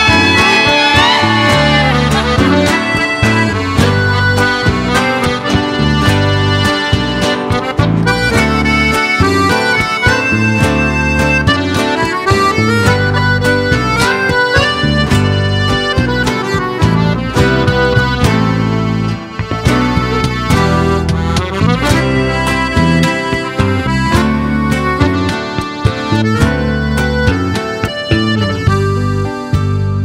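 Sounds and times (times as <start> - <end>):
bass guitar and guitar accompaniment: 0.0 - 30.0
button accordion solo: 0.0 - 30.0.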